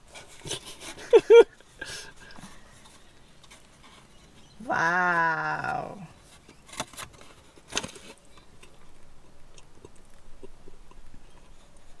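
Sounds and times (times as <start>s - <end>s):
person chewing: 8.4s - 12.0s.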